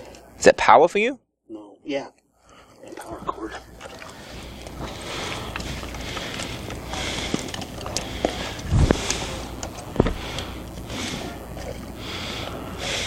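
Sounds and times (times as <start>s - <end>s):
steady low hum: 0.0s - 13.0s
rustling of cables: 2.8s - 13.0s.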